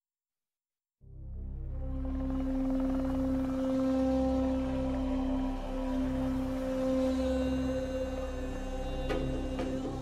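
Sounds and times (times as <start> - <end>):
low musical drone: 1.0 - 10.0.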